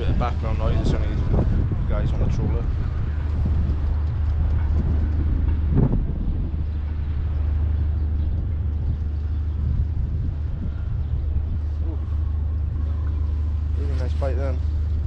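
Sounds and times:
low machinery drone: 0.0s - 15.0s.

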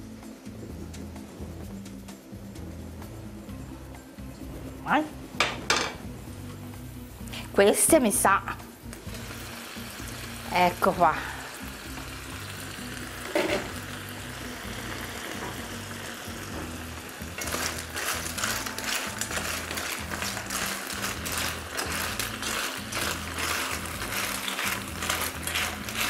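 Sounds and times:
clams sizzling in a pan: 6.7s - 26.0s
shells clattering in a pan: 13.2s - 13.8s, 17.4s - 26.0s.

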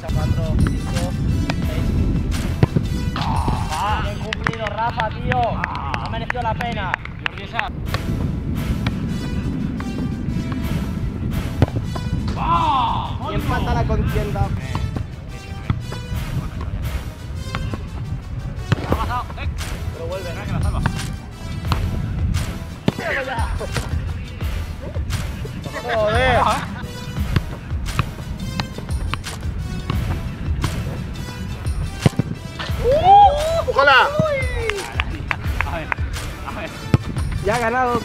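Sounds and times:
background music with steady beat: 0.0s - 38.0s.

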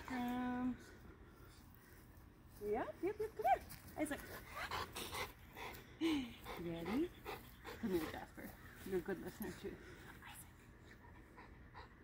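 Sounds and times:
dog panting: 4.0s - 12.0s.

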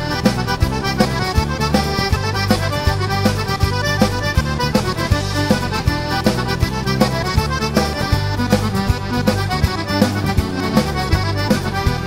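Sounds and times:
instrumental music with beat: 0.0s - 12.0s.

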